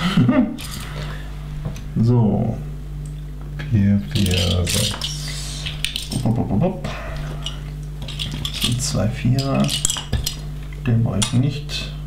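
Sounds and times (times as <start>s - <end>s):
steady low hum: 0.0s - 12.0s
plastic bricks clinking and rattling: 4.1s - 5.2s, 7.4s - 10.4s.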